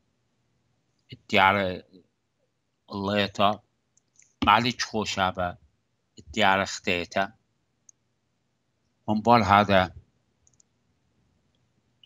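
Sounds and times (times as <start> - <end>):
faint clicks: 3.9 - 4.4, 7.8 - 8.0, 10.4 - 10.8.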